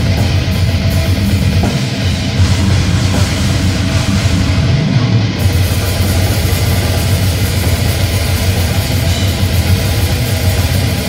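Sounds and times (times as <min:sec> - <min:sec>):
death metal band playing live: 0:00.0 - 0:11.0.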